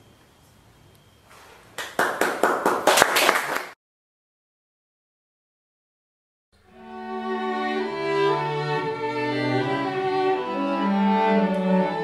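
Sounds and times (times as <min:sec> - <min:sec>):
audience clapping: 0:01.8 - 0:03.8.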